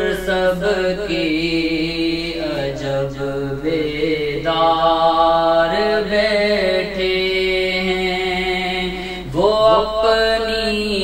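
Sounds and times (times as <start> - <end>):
devotional singing in long notes: 0.0 - 11.0.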